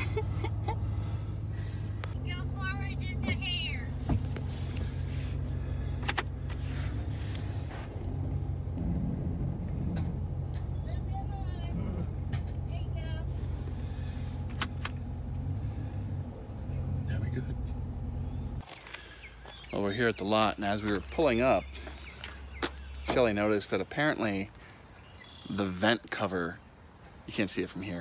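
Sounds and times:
truck engine idling: 0:00.0 - 0:25.4.

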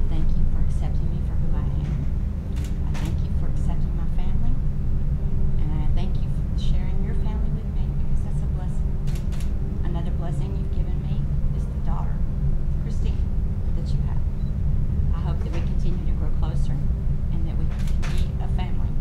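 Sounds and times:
indistinct speech: 0:00.0 - 0:02.0, 0:02.8 - 0:04.6, 0:05.6 - 0:08.8, 0:09.8 - 0:12.2, 0:12.8 - 0:14.3, 0:15.1 - 0:19.0
steady low rumble: 0:00.0 - 0:19.0.

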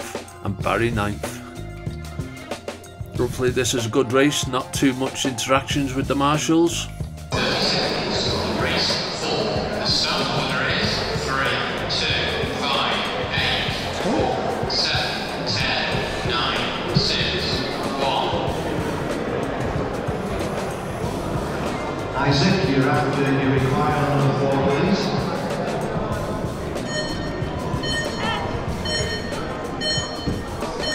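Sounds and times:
man speaking: 0:00.0 - 0:01.5, 0:03.2 - 0:09.0
music: 0:00.0 - 0:30.9
indistinct echoing voices: 0:07.3 - 0:30.9.

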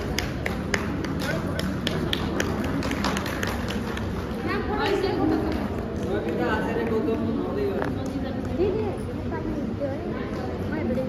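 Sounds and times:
people clapping: 0:00.0 - 0:08.7.

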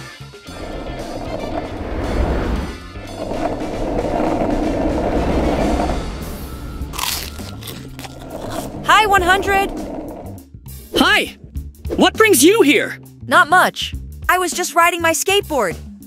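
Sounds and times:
skateboard wheels rolling: 0:00.0 - 0:10.4
background music: 0:00.4 - 0:16.0.

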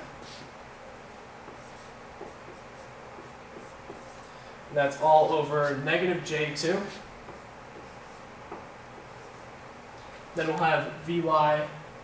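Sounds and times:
marker writing on whiteboard: 0:01.4 - 0:04.3, 0:06.8 - 0:09.5.

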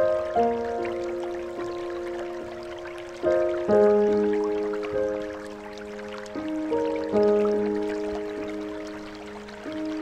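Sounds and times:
running water trickling: 0:00.0 - 0:10.0
soft piano notes: 0:00.0 - 0:10.0.

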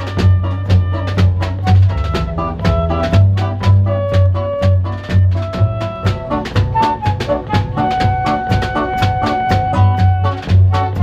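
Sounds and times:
acoustic guitar: 0:00.0 - 0:11.0
drum kit steady beat: 0:00.0 - 0:11.0
flute melody: 0:00.0 - 0:11.0
upright double bass: 0:00.0 - 0:11.0.

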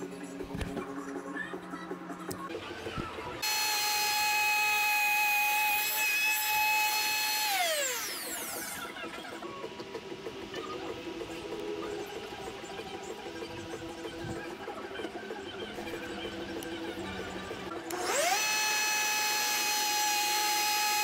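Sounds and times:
wood router whining: 0:02.9 - 0:10.2, 0:17.7 - 0:21.0.

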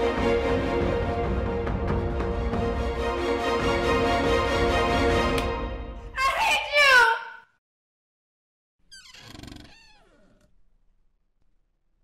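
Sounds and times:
woman screaming: 0:06.2 - 0:07.4.

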